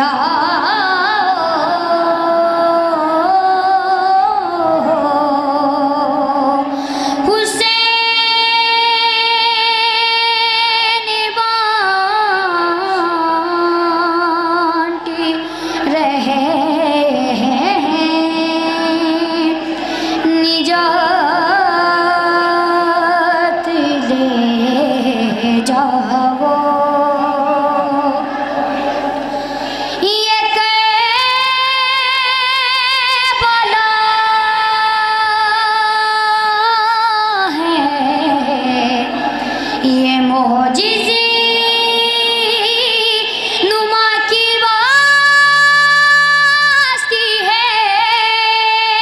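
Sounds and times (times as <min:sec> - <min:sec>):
boy singing a long note: 0:00.0 - 0:49.0.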